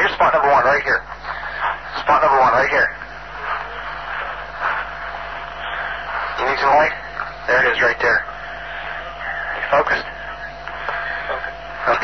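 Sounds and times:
men talking indistinctly: 0:00.0 - 0:12.0
steady hiss and hum: 0:00.0 - 0:12.0.

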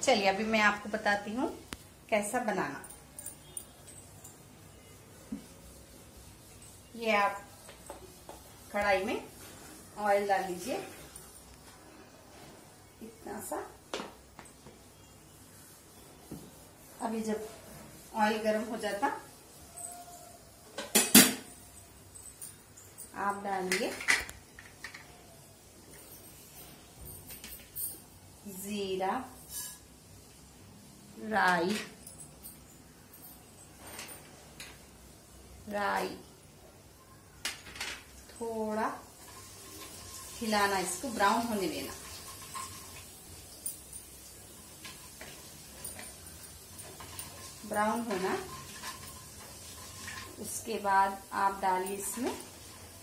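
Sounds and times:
seeds sizzling in hot oil: 0:04.9 - 0:11.6, 0:28.3 - 0:31.2, 0:38.1 - 0:53.0
metal kitchen utensils clinking: 0:20.7 - 0:25.2, 0:31.4 - 0:34.9, 0:37.5 - 0:53.0.

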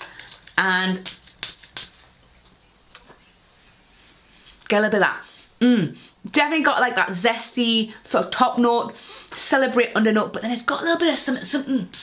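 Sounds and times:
spray bottle hisses: 0:01.0 - 0:02.0.

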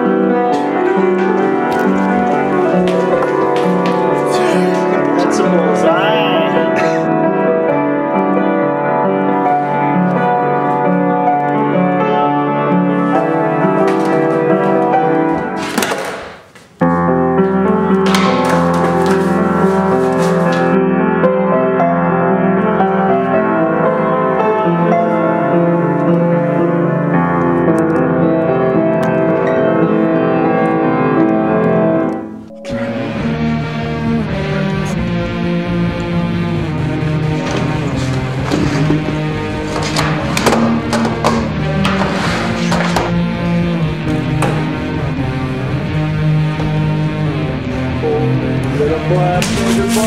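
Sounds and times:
piano-led music: 0:00.0 - 0:50.0
music with deep bass line: 0:32.6 - 0:50.0.

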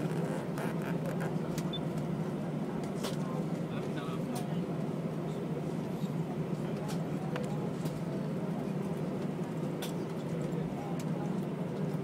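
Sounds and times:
jet engines rumbling in cabin: 0:00.0 - 0:12.0.

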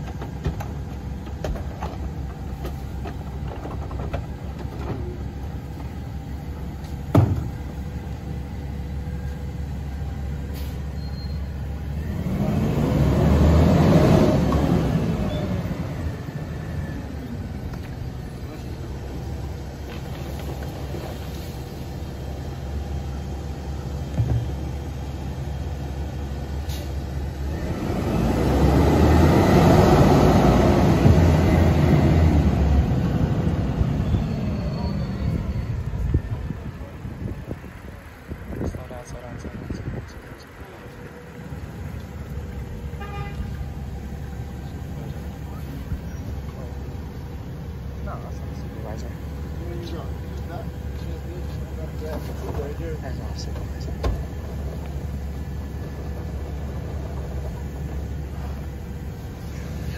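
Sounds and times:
garbage truck engine revving: 0:11.6 - 0:38.2.

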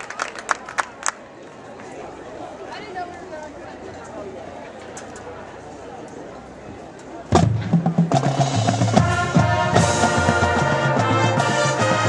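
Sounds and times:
crowd chatter: 0:00.0 - 0:12.0
drums and low brass hit: 0:07.3 - 0:12.0
brass chords over percussion: 0:07.4 - 0:12.0.

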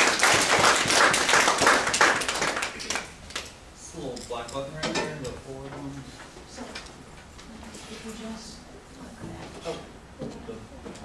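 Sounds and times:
audience applauding: 0:00.0 - 0:03.1.

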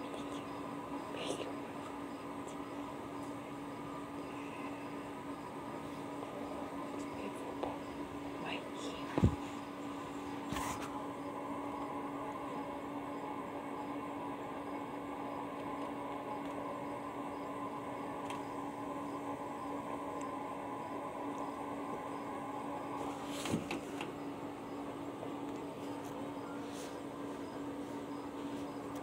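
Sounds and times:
steady mechanical hum: 0:00.0 - 0:29.0.

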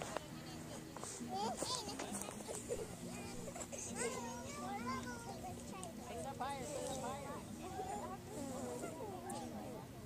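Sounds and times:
distant children calling and chattering: 0:00.0 - 0:10.0.

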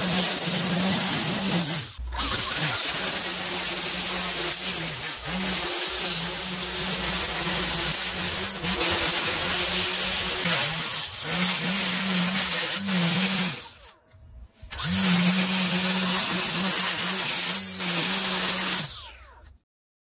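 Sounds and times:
string trimmer cutting grass: 0:00.0 - 0:14.0, 0:14.6 - 0:19.5.

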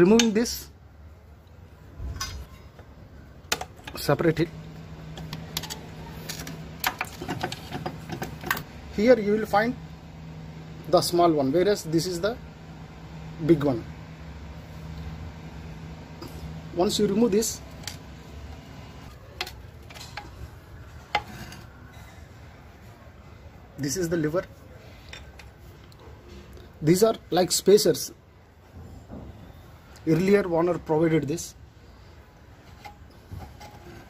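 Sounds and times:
steady low hum: 0:00.0 - 0:34.0
small metal clicks and scrapes: 0:05.1 - 0:08.7, 0:19.3 - 0:20.4.

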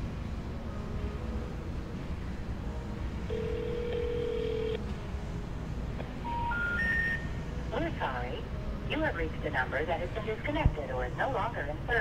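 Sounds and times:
phone line tone: 0:03.3 - 0:04.8, 0:06.3 - 0:07.3.

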